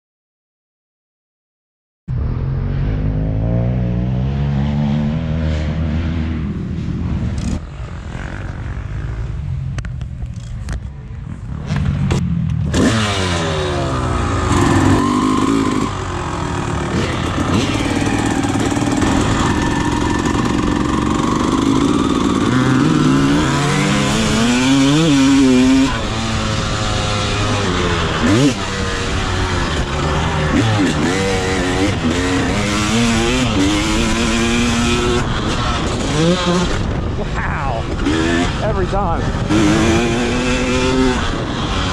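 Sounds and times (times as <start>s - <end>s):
motorcycle engine revving: 2.1s - 41.9s.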